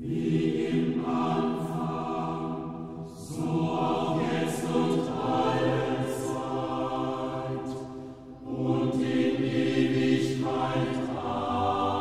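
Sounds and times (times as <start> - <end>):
choir singing sacred music: 0.0 - 12.0.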